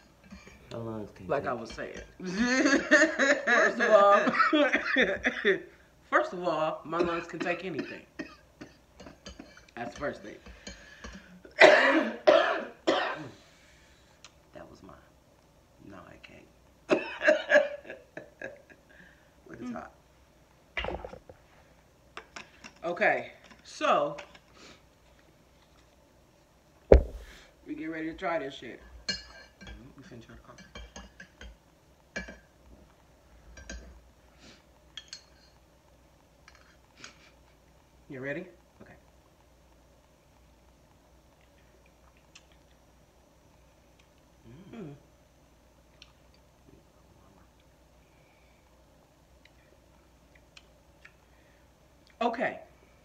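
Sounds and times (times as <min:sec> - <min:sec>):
person coughing: 0:11.5 - 0:13.4, 0:16.9 - 0:17.8.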